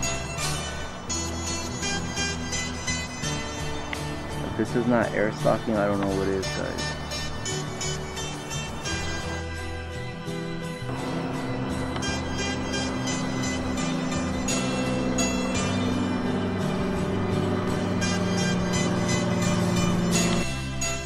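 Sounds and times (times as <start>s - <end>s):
background music: 0.0s - 21.0s
propeller plane droning overhead: 0.0s - 21.0s.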